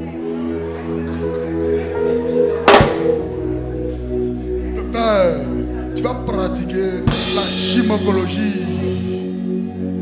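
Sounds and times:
sustained keyboard chords: 0.0s - 10.0s
drum kit hit: 2.7s - 3.3s, 7.1s - 7.8s.

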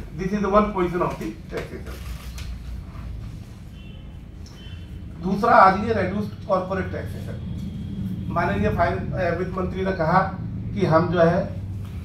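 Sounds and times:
low room rumble: 0.0s - 12.0s
paper crinkling and rustling: 1.1s - 3.1s.

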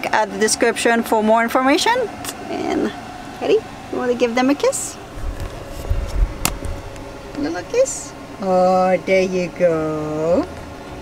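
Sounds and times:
camera handling rumble: 5.2s - 7.1s.

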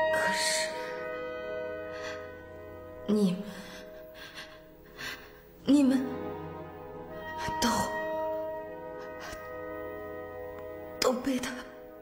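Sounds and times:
low musical drone: 0.0s - 12.0s
woman speaking: 3.0s - 3.8s, 5.6s - 6.3s, 7.4s - 8.2s, 11.0s - 11.8s.

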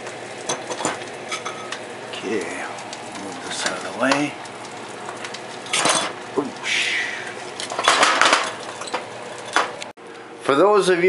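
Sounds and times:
dish clinking: 0.5s - 1.8s, 5.6s - 6.2s, 7.6s - 9.8s
pots and dishes scraping and knocking: 0.5s - 1.8s, 5.2s - 6.3s, 7.6s - 9.9s.

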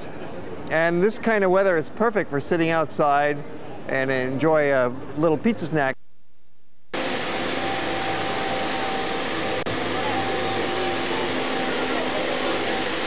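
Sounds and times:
steady hiss and hum: 0.0s - 13.0s.

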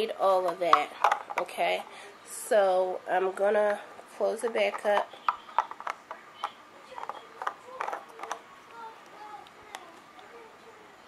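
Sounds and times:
plastic clicks and knocks: 0.4s - 1.5s, 4.4s - 8.4s.

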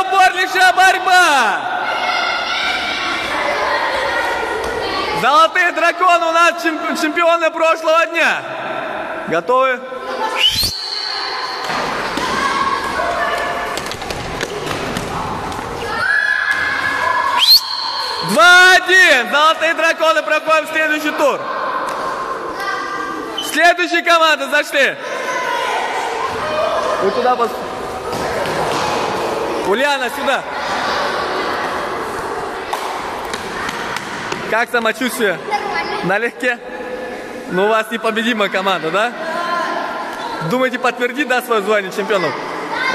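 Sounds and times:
reverberant gymnasium background noise: 0.0s - 42.9s
children shouting and cheering: 1.7s - 5.2s, 10.1s - 18.3s, 25.0s - 28.4s, 42.2s - 42.9s
high whistle: 10.4s - 11.7s, 17.4s - 18.4s.

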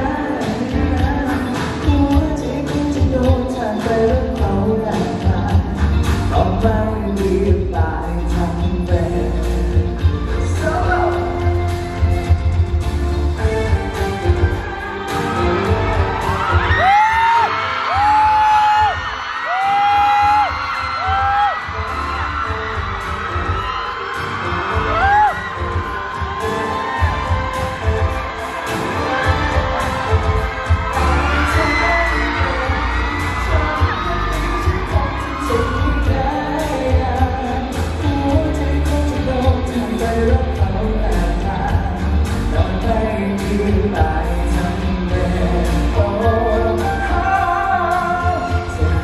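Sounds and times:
live pop song over pa: 0.0s - 49.0s.

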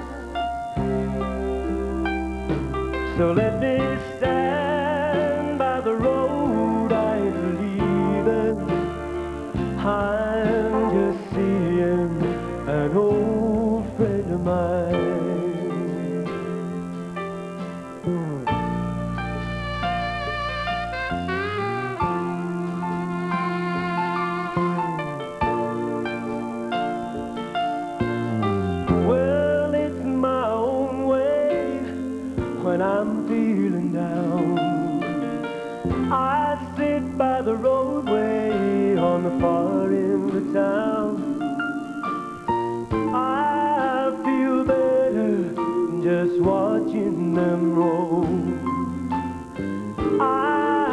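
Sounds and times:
bass line: 0.0s - 50.9s
country band playing: 0.0s - 50.9s
guitar leading: 0.0s - 50.9s.

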